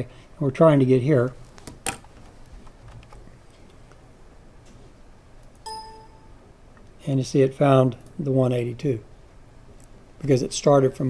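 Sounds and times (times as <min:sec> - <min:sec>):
short electronic chime: 0:05.7 - 0:06.4.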